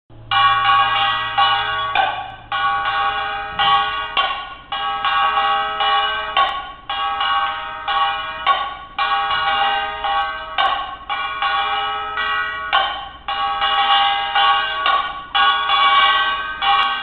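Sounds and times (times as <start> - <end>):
small brass gong struck rhythmically: 0.2 - 17.0.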